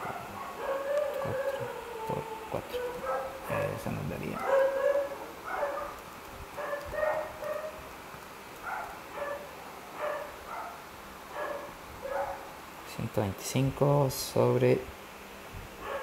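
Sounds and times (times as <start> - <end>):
animal whining: 0.0 - 6.0.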